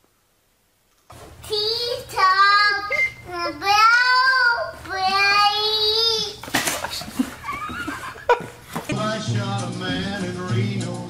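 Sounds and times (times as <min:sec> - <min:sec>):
child singing: 0:01.4 - 0:06.4.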